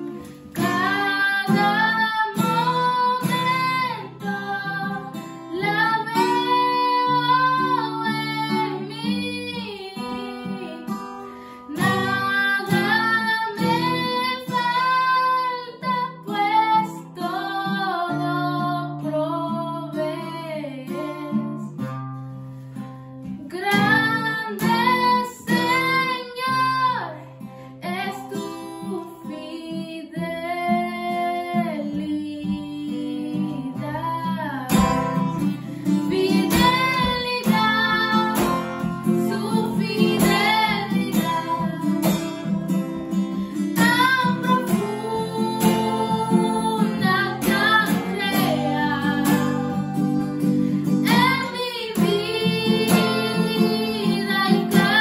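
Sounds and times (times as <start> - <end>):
girl singing: 0.0 - 21.8, 23.4 - 55.0
acoustic guitar: 0.0 - 55.0.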